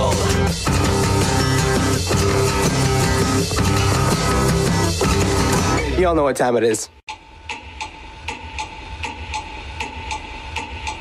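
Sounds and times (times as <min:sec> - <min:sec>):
clock ticking: 0:07.1 - 0:11.0.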